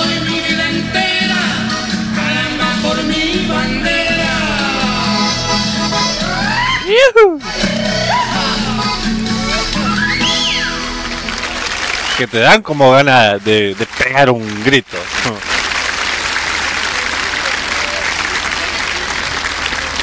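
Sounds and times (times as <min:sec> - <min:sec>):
button accordion: 0:00.0 - 0:12.1
guitar: 0:00.0 - 0:13.6
performers' gliding cries: 0:01.0 - 0:12.5.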